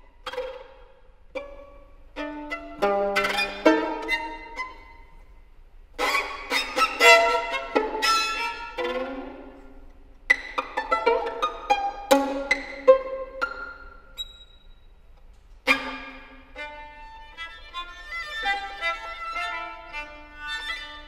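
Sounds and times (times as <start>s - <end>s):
solo violin playing: 0.0s - 14.6s, 15.6s - 21.0s.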